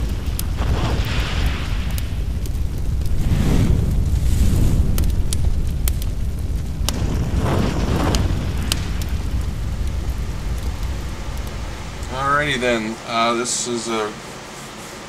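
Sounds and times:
fire crackling: 0.0 - 15.0
fire rumbling: 0.0 - 15.0
fire whoosh: 0.0 - 15.0.

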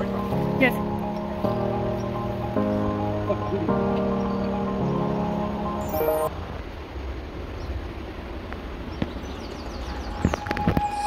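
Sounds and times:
wind rumble on microphone: 6.6 - 11.0.

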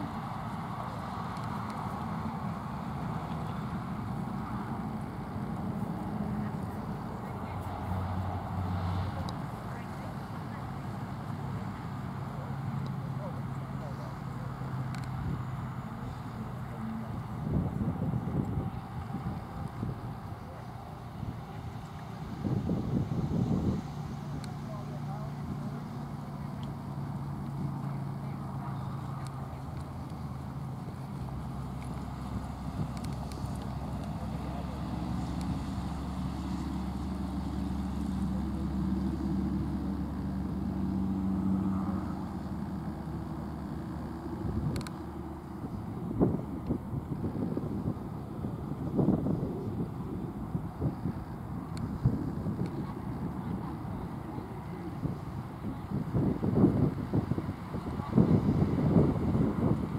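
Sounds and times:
vehicle engine humming: 0.0 - 59.9
wind buffeting microphone: 16.6 - 59.9.

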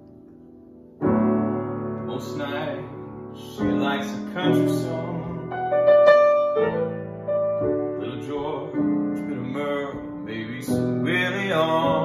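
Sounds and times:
piano playing jazzy chords: 0.0 - 12.0
man singing: 2.1 - 5.8, 7.9 - 12.0.

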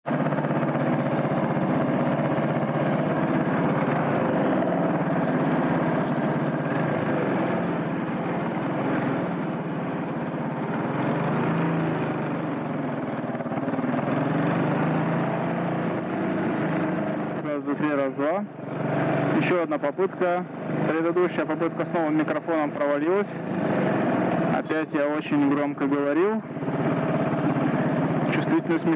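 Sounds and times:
motorcycle engine running: 0.0 - 28.9.

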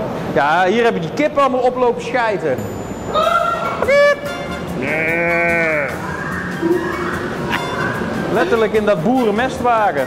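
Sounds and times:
background music: 2.6 - 10.0
long bleat: 4.8 - 6.0.

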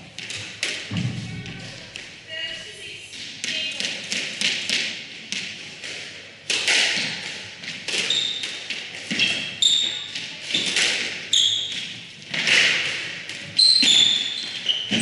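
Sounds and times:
squash ball smacking: 0.1 - 2.2, 3.2 - 9.6, 10.6 - 14.0
court shoes squeaking: 7.8 - 15.0.

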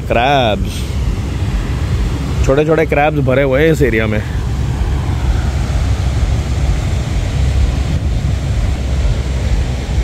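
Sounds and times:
sea surf breaking: 0.0 - 10.0
wind buffeting microphone: 0.0 - 10.0.

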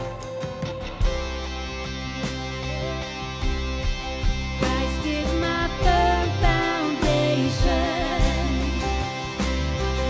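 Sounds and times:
worship band playing: 0.0 - 10.0
women singing with vibrato: 4.6 - 9.0.

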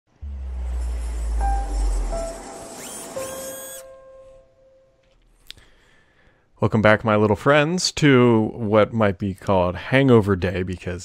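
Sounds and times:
deep bass swell: 0.1 - 4.6
rising swoosh: 0.1 - 4.9
bright chime tone: 0.3 - 5.1.

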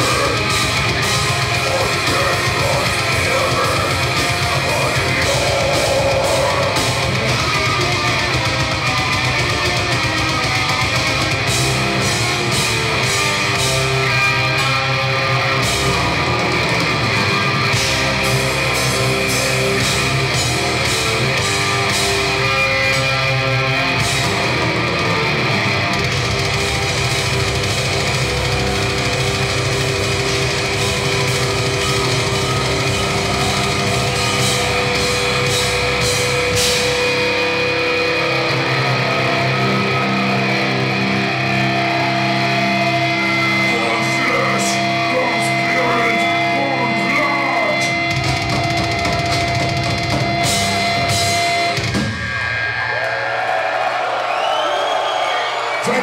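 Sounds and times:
crowd shouting: 0.0 - 9.5, 22.2 - 48.4, 50.4 - 56.0
live metal band playing: 0.0 - 54.3.

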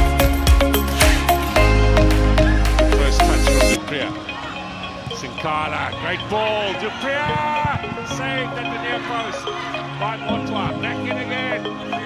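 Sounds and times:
male commentator exclaiming: 5.2 - 11.7.

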